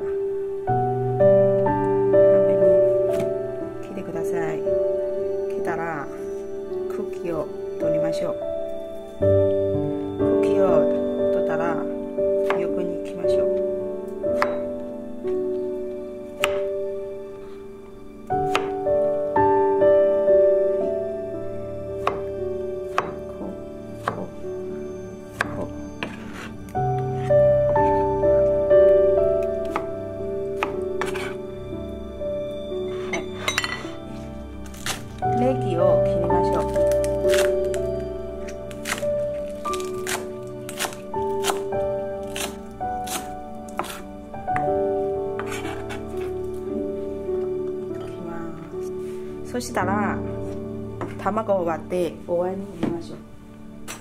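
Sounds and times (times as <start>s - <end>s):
soft piano music: 0.0s - 54.0s
knife chopping on cutting board: 18.5s - 18.7s, 22.9s - 23.2s, 24.0s - 24.3s, 30.6s - 31.4s, 39.8s - 44.0s, 45.4s - 46.3s.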